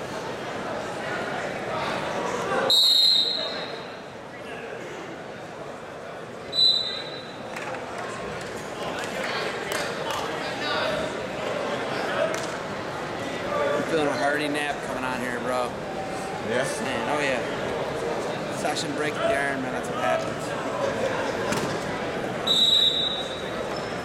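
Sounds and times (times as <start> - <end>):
crowd chatter: 0.0 - 24.0
referee's whistle: 2.7 - 3.9, 6.5 - 7.4, 22.4 - 23.5.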